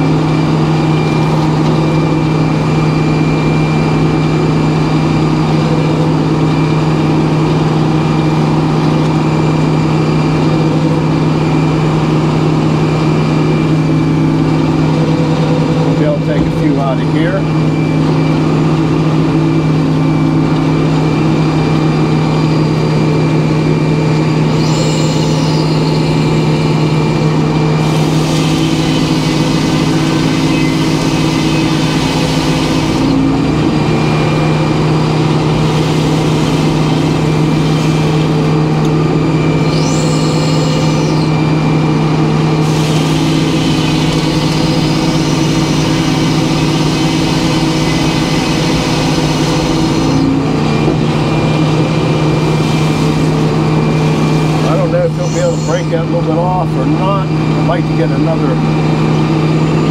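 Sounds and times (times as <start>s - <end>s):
engine hum: 0.0s - 59.9s
saw blade whines: 0.0s - 59.9s
saw blade cutting log: 27.8s - 33.2s, 42.6s - 50.3s.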